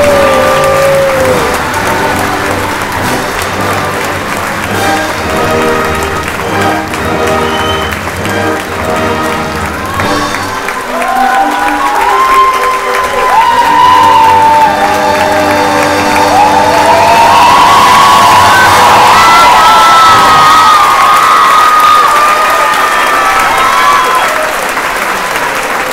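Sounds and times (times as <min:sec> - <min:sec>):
audience applauding and cheering: 0:00.0 - 0:25.9.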